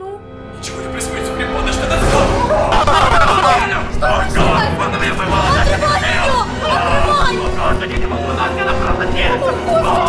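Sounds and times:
people crying out and talking: 1.7 - 10.0
steady low rumble: 4.1 - 7.5.

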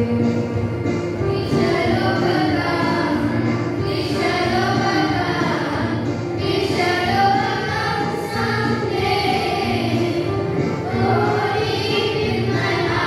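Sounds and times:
girls singing together: 0.0 - 13.0.

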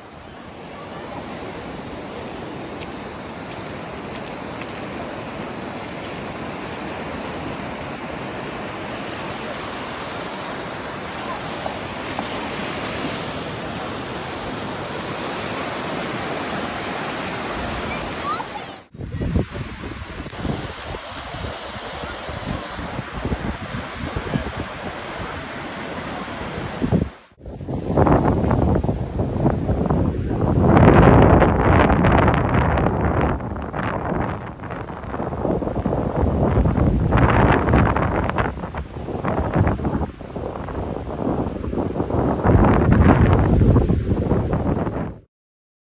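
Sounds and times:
ocean waves washing onto beach: 0.0 - 45.2
wind buffeting microphone: 0.0 - 45.2.

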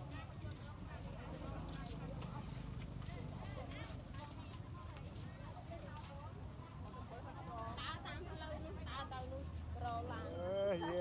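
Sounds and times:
indistinct voices talking: 9.9 - 11.0.

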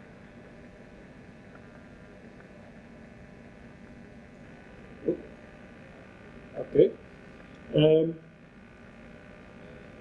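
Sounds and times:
microphone system hiss and hum: 0.0 - 10.0.

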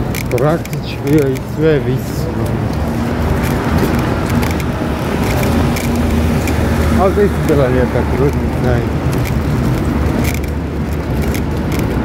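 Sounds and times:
rumble of passing cars: 0.0 - 12.0.

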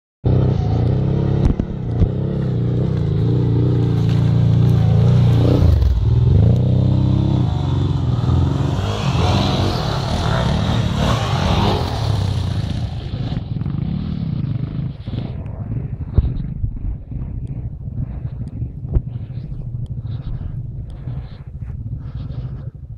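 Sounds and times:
motorcycle engines revving: 0.3 - 22.9.

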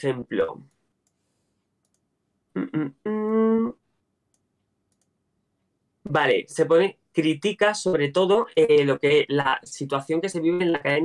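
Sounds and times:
faint clicks: 1.8 - 2.1, 4.3 - 5.2.

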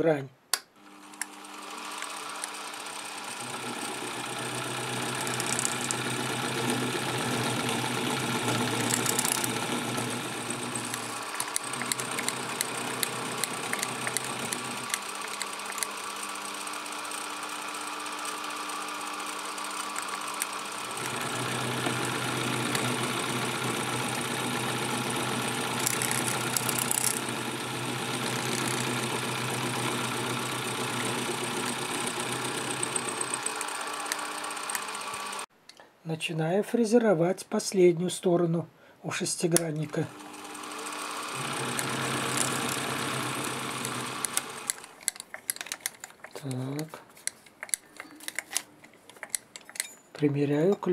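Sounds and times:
milling machine motor hum: 0.8 - 35.5, 39.9 - 44.9.

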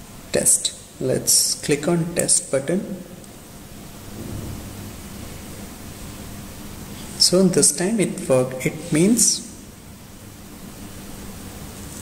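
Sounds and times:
background hiss: 0.0 - 12.0
low rumble: 4.0 - 6.0.

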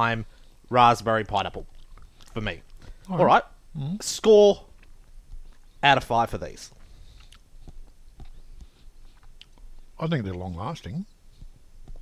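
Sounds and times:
wet mouth clicks chewing: 1.6 - 2.8, 7.1 - 9.9.

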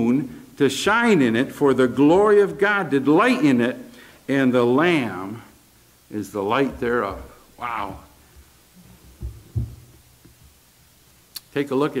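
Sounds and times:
soft low thumps: 8.4 - 10.6.

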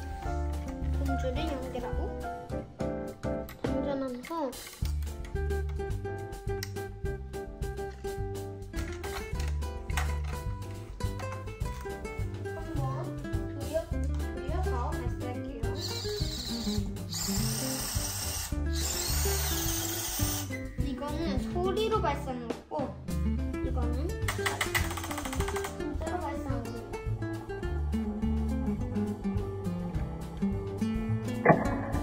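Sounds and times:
background music with steady beat: 0.0 - 32.0
small electric motor whirring: 15.8 - 20.6.

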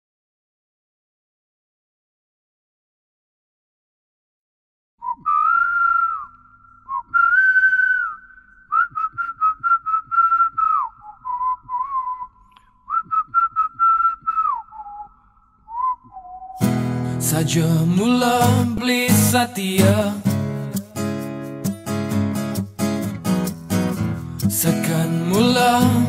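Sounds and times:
person whistling a melody: 5.0 - 17.4, 24.2 - 26.0.

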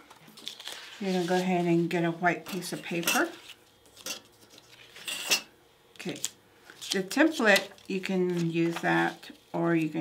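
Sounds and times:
papery scrape: 0.4 - 1.7.

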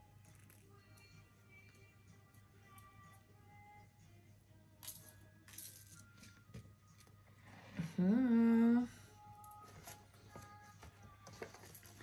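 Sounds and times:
soft background music: 0.0 - 12.0
boxes and paper bags handled: 9.4 - 12.0.

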